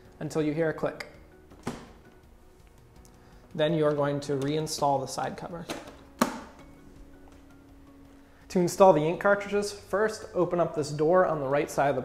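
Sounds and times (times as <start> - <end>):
plastic cover snapping shut: 5.7 - 6.6.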